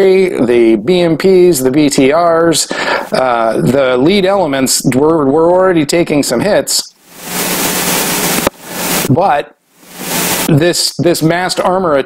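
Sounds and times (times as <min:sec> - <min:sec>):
breath on close microphone: 0:02.7 - 0:03.1.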